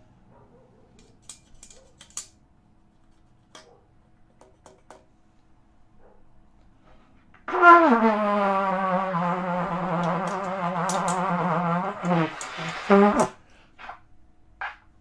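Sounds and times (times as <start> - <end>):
trumpet note sliding down: 7.5 - 13.3
short trumpet blasts: 7.5 - 14.0.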